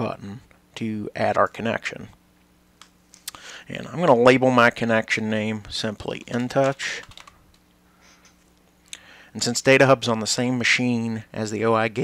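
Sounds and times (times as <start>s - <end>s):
faint computer keyboard keystrokes: 6.2s - 7.6s.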